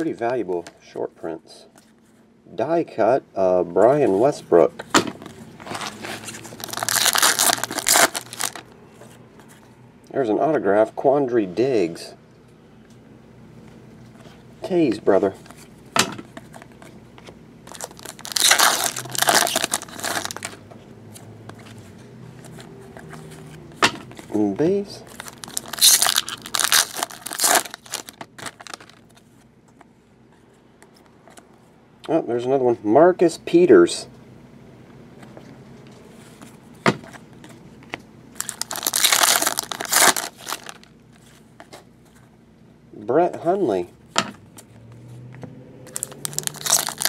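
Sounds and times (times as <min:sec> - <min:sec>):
cards being handled: 0:03.8 - 0:09.7, 0:15.2 - 0:29.9, 0:36.0 - 0:42.3
foil wrapper tearing and crinkling: 0:05.7 - 0:08.6, 0:17.7 - 0:20.6, 0:25.1 - 0:29.1, 0:38.4 - 0:40.9, 0:45.9 - 0:47.0.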